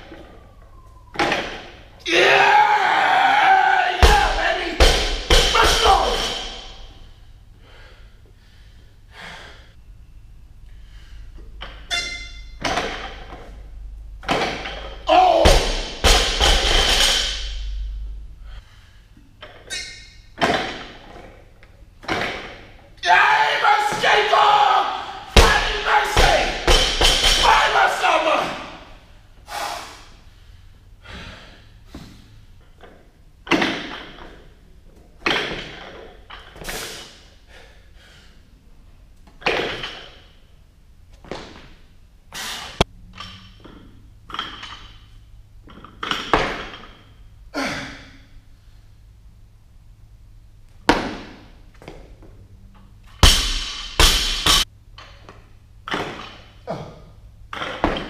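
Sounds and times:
barbell crashing on floor: 0:04.0 - 0:07.0, 0:11.6 - 0:13.4, 0:14.2 - 0:17.9, 0:20.4 - 0:21.0, 0:25.2 - 0:27.8, 0:46.0 - 0:47.1, 0:53.2 - 0:54.7
weights thudding and clanking: 0:14.2 - 0:18.0.

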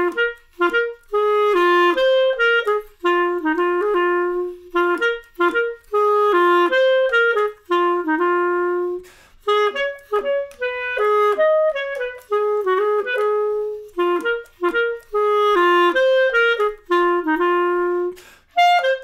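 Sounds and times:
clarinet playing jazz waltz: 0:00.0 - 0:19.0.

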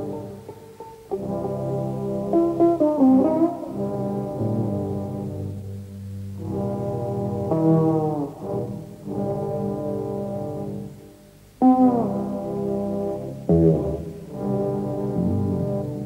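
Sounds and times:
saxophones playing: 0:15.1 - 0:16.0.

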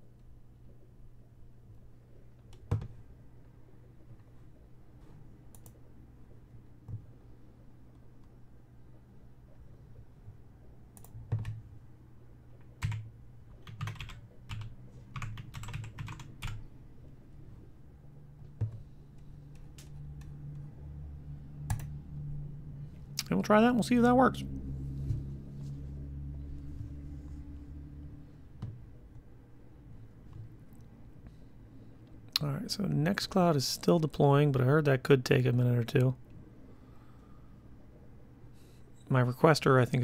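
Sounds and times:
typing on computer keyboard: 0:11.0 - 0:11.6, 0:12.8 - 0:16.6.

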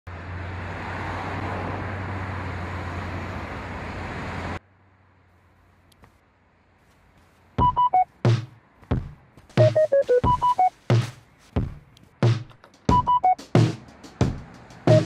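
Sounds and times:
car driving past: 0:00.1 - 0:05.3.

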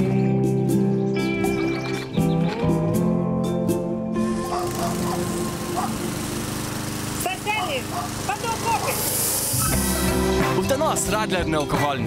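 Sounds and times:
lawn mower running: 0:04.1 - 0:12.0.

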